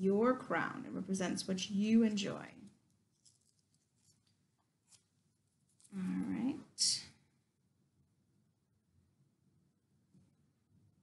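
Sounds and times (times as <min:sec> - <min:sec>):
faint ticks of peeling paper: 0:02.9 - 0:05.1.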